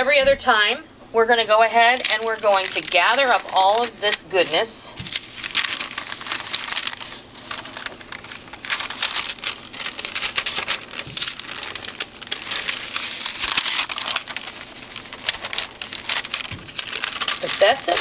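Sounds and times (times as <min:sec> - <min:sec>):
paper crinkling and rustling: 0:01.7 - 0:18.0.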